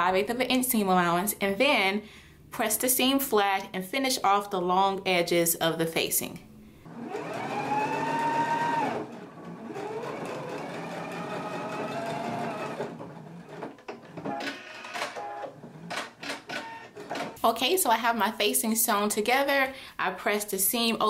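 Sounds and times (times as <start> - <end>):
sewing machine stitching: 6.9 - 17.4.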